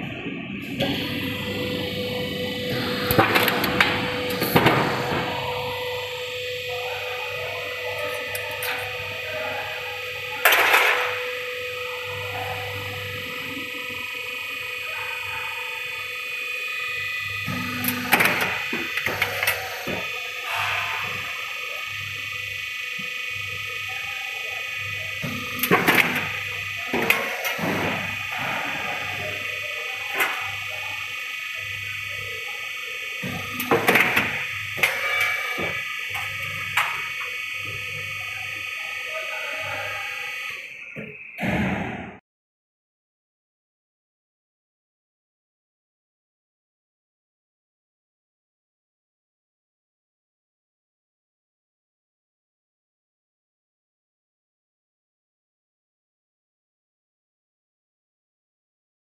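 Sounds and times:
roll forming machine humming: 0.0s - 41.4s.

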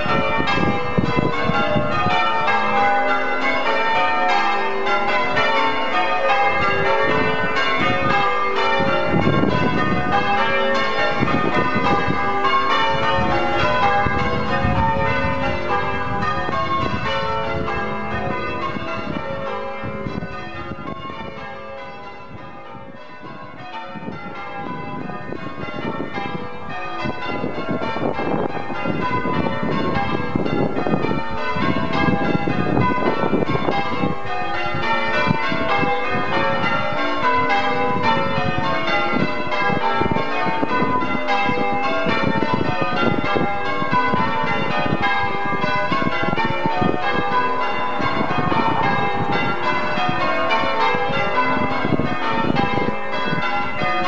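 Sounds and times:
church bells change ringing: 0.0s - 54.0s.

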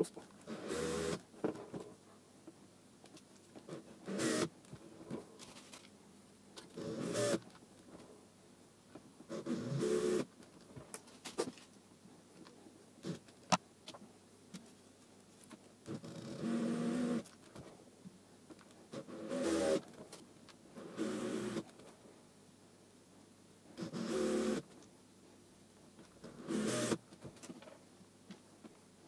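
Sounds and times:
cordless drill motor bursts: 0.5s - 1.2s, 4.1s - 4.5s, 6.8s - 7.4s, 9.3s - 10.3s, 15.9s - 17.2s, 18.9s - 19.8s, 20.8s - 21.6s, 23.8s - 24.7s, 26.2s - 27.0s.

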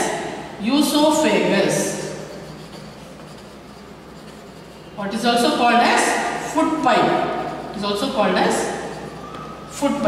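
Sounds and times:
pen scratching on paper: 2.3s - 4.8s.

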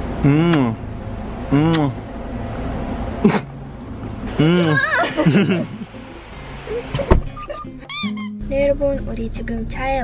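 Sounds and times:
background music: 0.7s - 10.0s
cartoon squeak: 7.3s - 8.4s.

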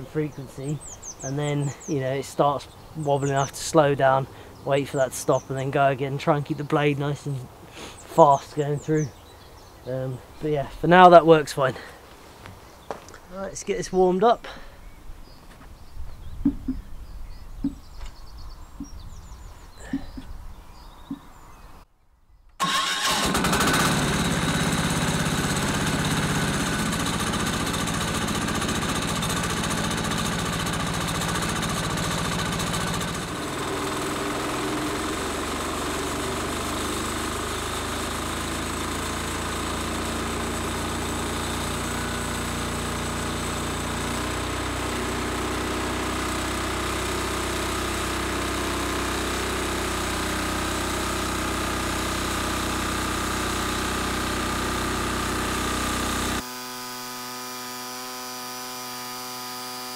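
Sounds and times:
small engine starting and running: 0.6s - 2.4s, 22.6s - 59.9s.

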